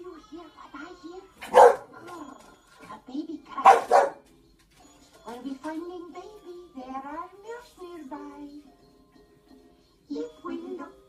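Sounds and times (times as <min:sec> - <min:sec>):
tv voices: 0:00.0 - 0:04.2
dog barking: 0:01.4 - 0:02.1, 0:03.6 - 0:04.2.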